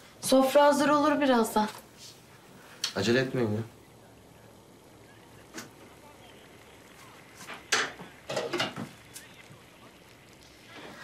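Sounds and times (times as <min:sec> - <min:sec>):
dishes and utensils clinking: 0:07.7 - 0:08.9.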